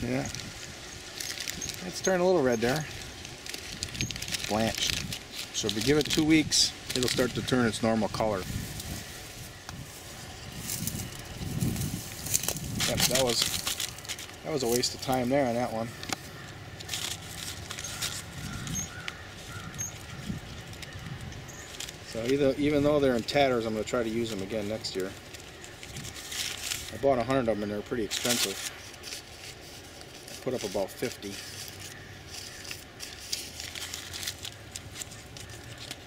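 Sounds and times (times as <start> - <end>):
paper bag crinkling: 0.0 - 9.4, 10.0 - 36.0.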